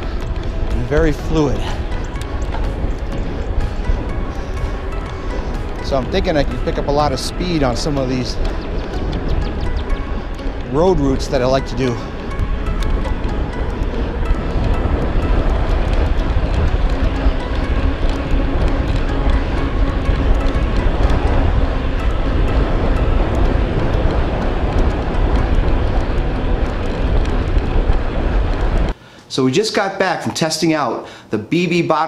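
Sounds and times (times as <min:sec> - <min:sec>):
bicycle tyre noise on road: 0:00.0 - 0:29.0
wind buffeting microphone: 0:00.0 - 0:29.0.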